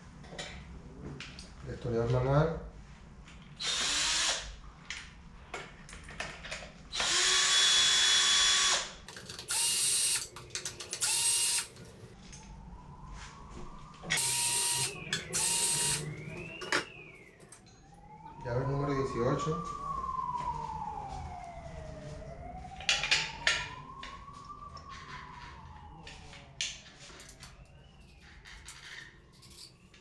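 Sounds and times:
cordless drill bursts: 3.6 - 4.4, 6.9 - 8.9, 9.5 - 10.3, 11.0 - 11.7, 14.2 - 16.0.

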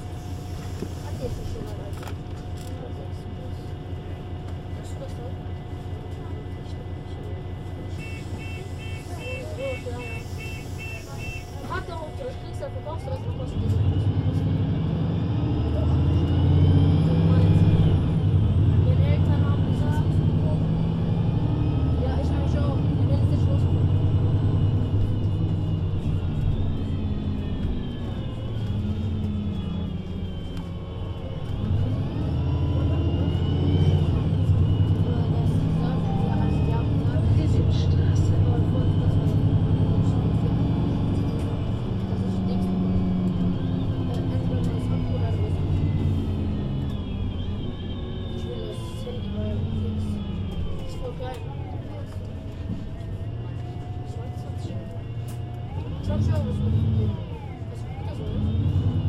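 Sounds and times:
bus diesel engine accelerating: 0.0 - 59.0.

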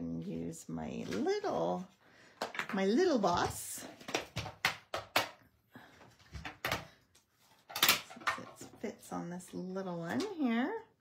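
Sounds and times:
plastic clicks and knocks: 7.7 - 8.8.

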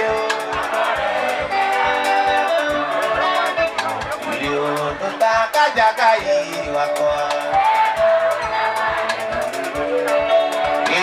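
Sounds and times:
live band with guitar and bass: 0.0 - 11.0
steady drum beat: 0.0 - 11.0.

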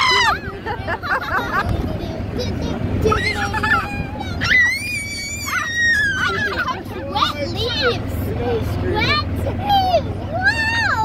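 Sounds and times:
child squealing: 0.0 - 0.5, 3.1 - 6.8
golf cart rumbling on dirt road: 0.0 - 11.0.

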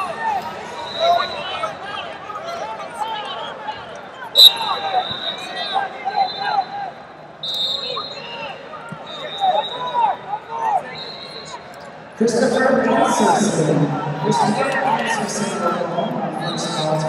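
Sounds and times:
referee's whistle blast: 4.4 - 6.7, 7.4 - 8.4.

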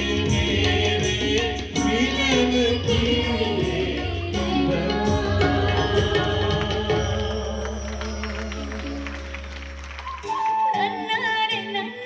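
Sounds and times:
person singing live: 0.0 - 9.2
amplified band accompaniment: 0.0 - 12.0.

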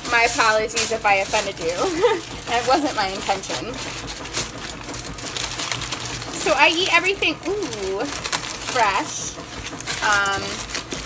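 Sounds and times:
aluminium foil crinkling: 0.0 - 11.0.

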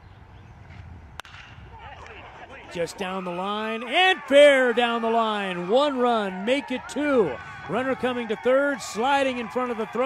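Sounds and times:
faint stadium background noise: 0.0 - 10.0
metal bat cracking ball: 1.2 - 2.2.

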